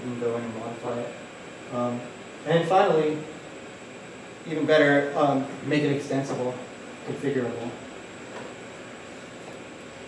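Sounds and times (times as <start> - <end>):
background hiss: 0.0 - 10.0
faint high-pitched whine: 0.0 - 10.0.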